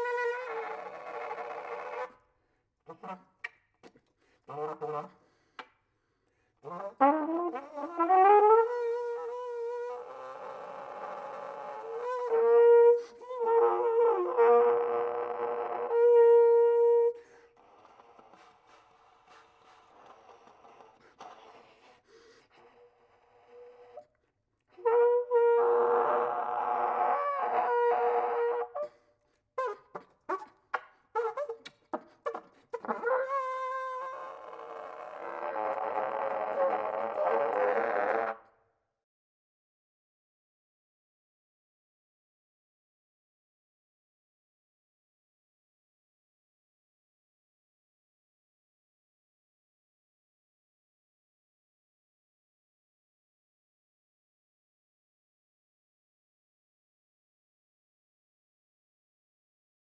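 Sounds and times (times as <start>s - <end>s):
breath noise: 4.0s - 6.6s, 17.2s - 24.0s
flugelhorn playing: 6.6s - 17.2s, 24.8s - 28.9s, 32.8s - 38.4s.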